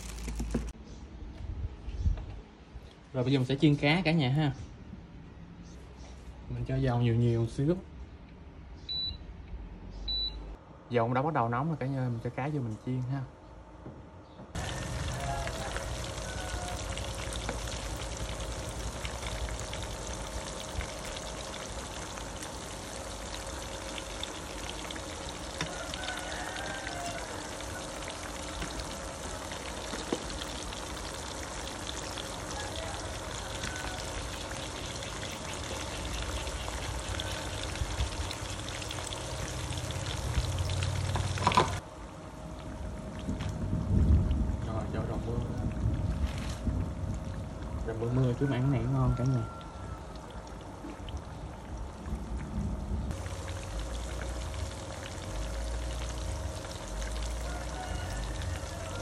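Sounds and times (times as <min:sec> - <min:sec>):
fish sizzling in hot oil: 0:00.0 - 0:00.7, 0:14.6 - 0:41.8, 0:53.0 - 0:59.0.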